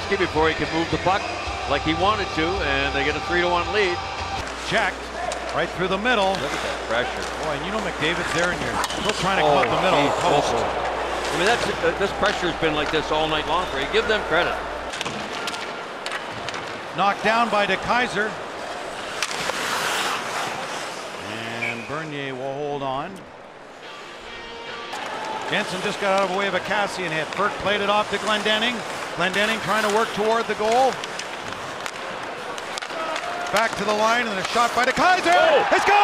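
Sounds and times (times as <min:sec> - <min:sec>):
crowd noise hum: 0:00.0 - 0:36.0
hockey sticks and puck clacking: 0:04.4 - 0:21.9, 0:24.9 - 0:36.0
crowd murmur in arena: 0:08.5 - 0:16.0, 0:20.4 - 0:21.9.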